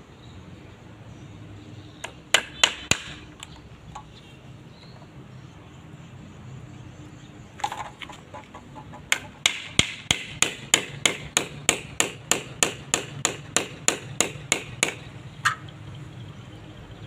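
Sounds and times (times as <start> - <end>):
hammer driving nail: 9.1 - 15.0.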